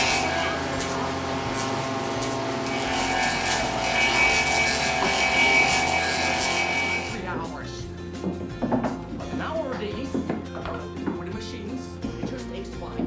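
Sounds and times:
lathe cutting wood: 0.0 - 7.2.

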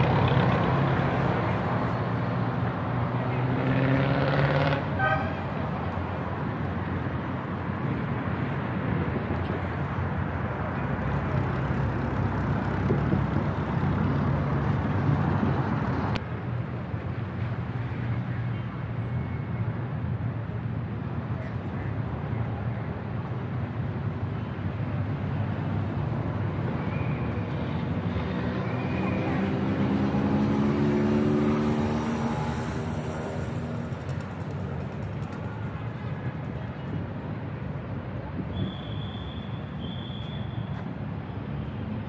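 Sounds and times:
street traffic: 0.0 - 42.0
vehicle engine droning past: 28.7 - 34.1.

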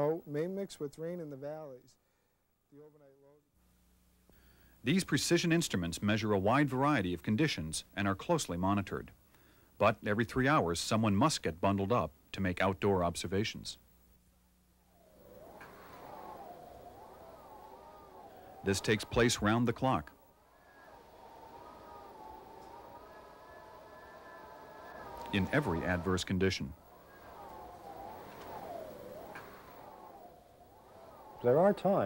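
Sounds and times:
wind howling: 14.7 - 32.0.

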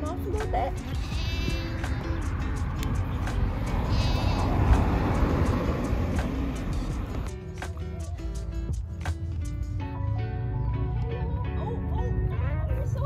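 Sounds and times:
lambs bleating: 0.8 - 2.2, 3.8 - 4.7.

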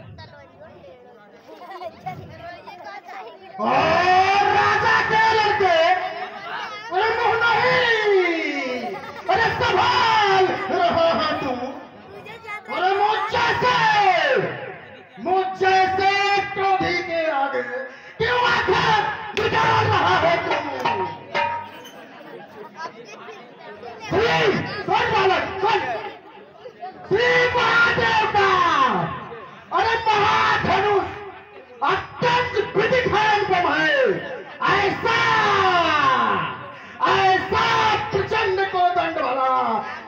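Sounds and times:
low chatter of voices: 19.5 - 37.6.

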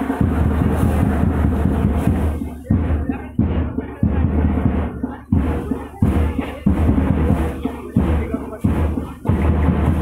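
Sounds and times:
loud distorted drumming: 0.0 - 10.0.

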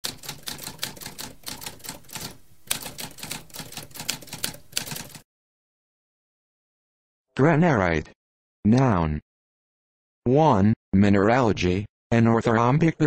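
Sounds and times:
typewriter keys clicking: 0.0 - 5.2.

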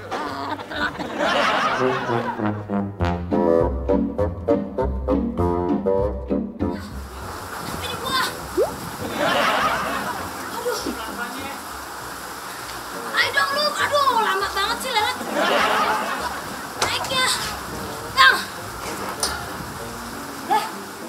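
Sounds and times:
steady background hiss: 6.8 - 21.0.

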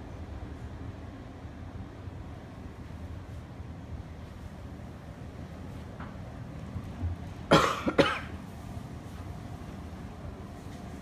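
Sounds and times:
person coughing: 7.5 - 8.3.

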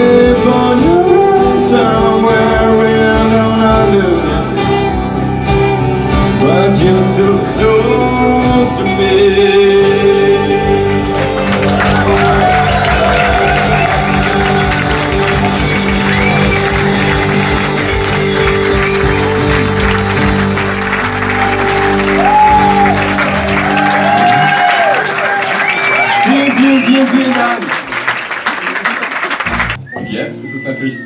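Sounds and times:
guitar and bass chord ringing: 0.0 - 24.6
audience applauding and cheering: 10.8 - 29.9.

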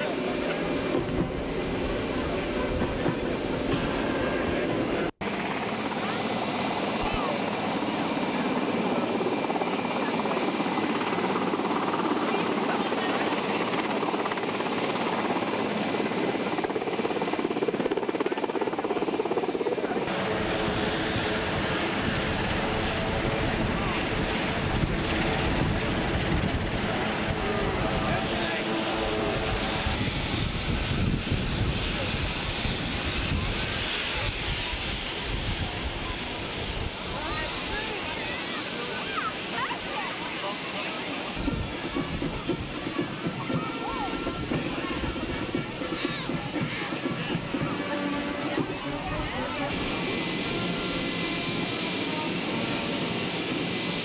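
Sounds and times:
aircraft engine noise: 0.0 - 54.0
crowd voices: 0.0 - 54.0.

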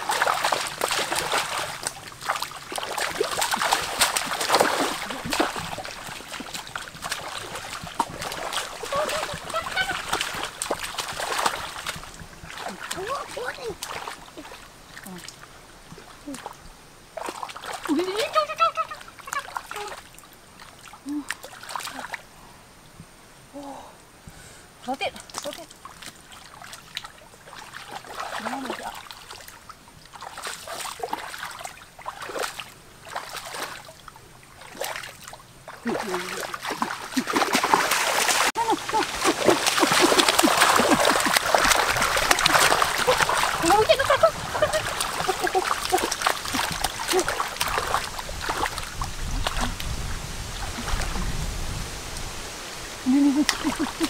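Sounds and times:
hands splashing in stream water: 0.0 - 22.2, 25.2 - 51.4, 53.2 - 54.0.

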